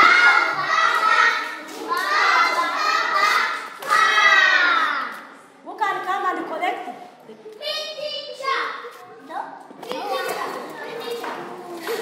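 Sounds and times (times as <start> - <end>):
children calling out and chattering: 0.0 - 5.6, 7.0 - 12.0.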